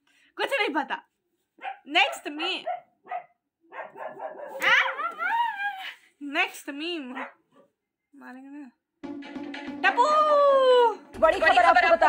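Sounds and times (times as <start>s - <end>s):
dog barking: 1.6s - 5.1s, 7.1s - 7.8s.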